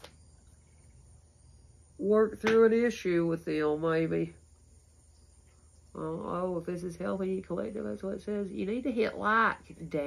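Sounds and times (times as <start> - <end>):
crickets chirping: 0.0 - 10.0
low steady hum: 0.0 - 10.0.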